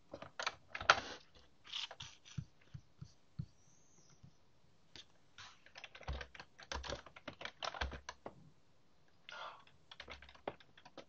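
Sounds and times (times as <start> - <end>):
keyboard and mouse clicks: 5.0 - 8.3, 9.9 - 11.0.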